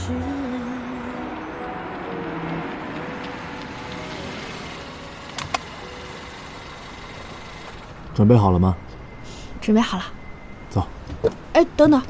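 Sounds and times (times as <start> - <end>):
car engine and road noise: 0.0 - 12.0
sharp clicks: 5.3 - 5.7.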